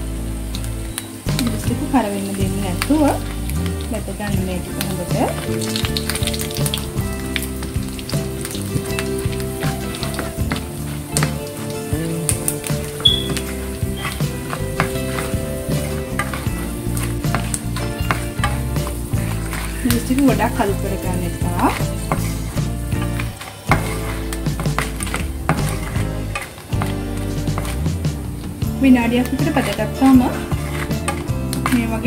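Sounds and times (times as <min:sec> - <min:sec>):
chillies sizzling in hot oil: 0:00.0 - 0:32.0
soft background music: 0:00.0 - 0:32.0
sharp crackles and clicks: 0:00.4 - 0:32.0
wooden spatula turning: 0:01.3 - 0:32.0.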